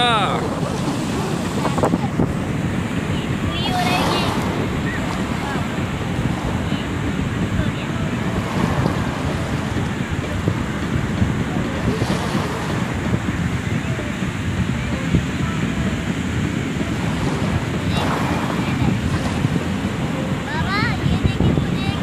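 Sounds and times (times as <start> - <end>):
faint voices: 0.0 - 22.0
surf breaking on beach: 0.0 - 22.0
wind buffeting microphone: 0.0 - 22.0.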